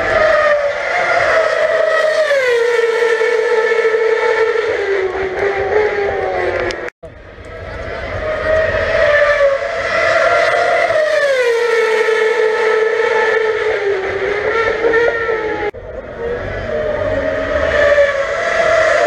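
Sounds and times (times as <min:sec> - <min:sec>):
racing car engine screaming: 0:00.0 - 0:06.9, 0:07.5 - 0:19.0.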